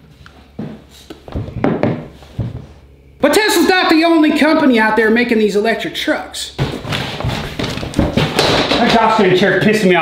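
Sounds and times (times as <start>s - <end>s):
footsteps on floor: 0.0s - 2.9s, 6.6s - 9.3s
thuds on wooden desk: 1.4s - 2.6s, 6.6s - 9.0s.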